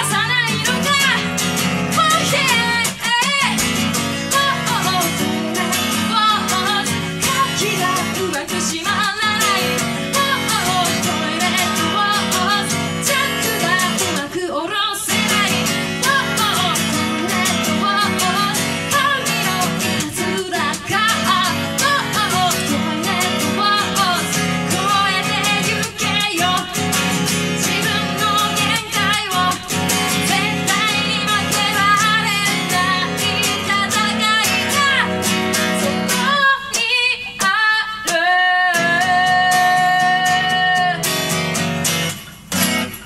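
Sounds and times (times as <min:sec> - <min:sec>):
woman singing: 0:00.0 - 0:41.6
acoustic guitar strumming: 0:00.0 - 0:43.0.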